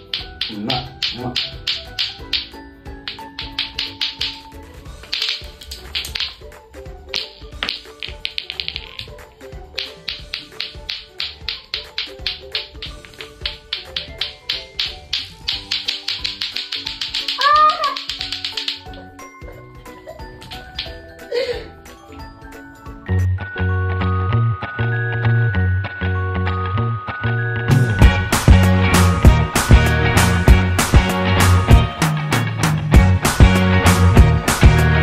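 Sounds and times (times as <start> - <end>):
plastic clacker balls clacking: 0.0 - 6.5, 7.1 - 19.2, 20.4 - 21.0
background music: 0.0 - 35.0.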